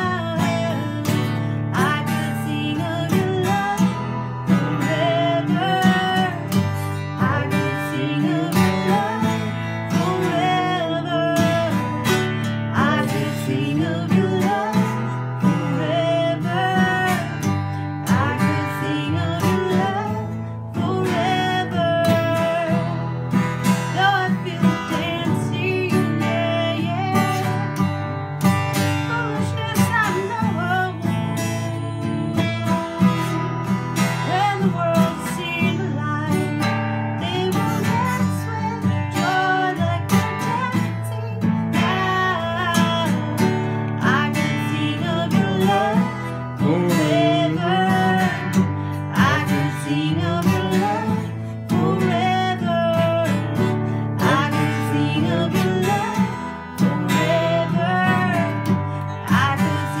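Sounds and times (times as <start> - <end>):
acoustic guitar strumming: 0.0 - 60.0
woman singing: 0.0 - 60.0.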